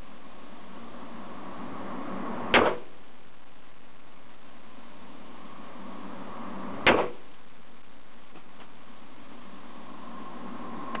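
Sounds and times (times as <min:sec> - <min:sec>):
revolver gunshot with echo: 0:02.5 - 0:02.9, 0:06.8 - 0:07.2.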